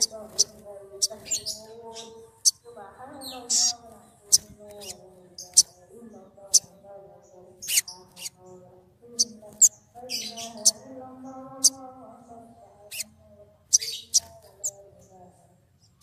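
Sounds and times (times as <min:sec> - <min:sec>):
high-pitched bird chirps: 0:00.0 - 0:06.8, 0:07.5 - 0:08.5, 0:09.1 - 0:11.9, 0:12.9 - 0:14.8
fainter lower bird voice: 0:00.0 - 0:16.0.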